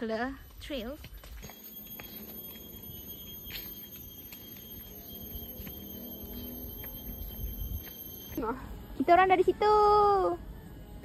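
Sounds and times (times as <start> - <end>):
cicada whine: 1.3 - 8.4.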